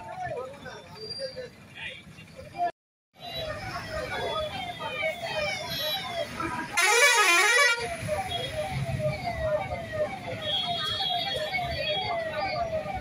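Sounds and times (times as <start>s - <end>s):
emergency vehicle siren wailing: 3.2s - 13.0s
wavering siren blast: 4.0s - 13.0s.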